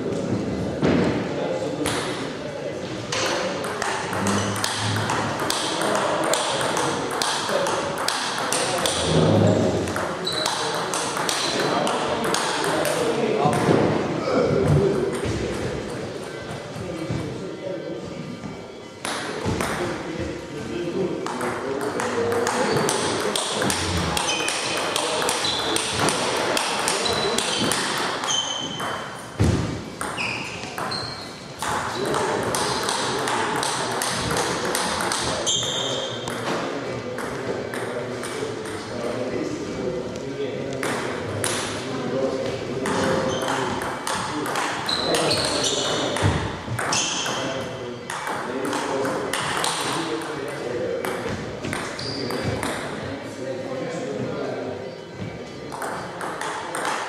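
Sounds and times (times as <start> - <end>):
table tennis ball clicking: 9.9 - 13.6, 55.8 - 57.0.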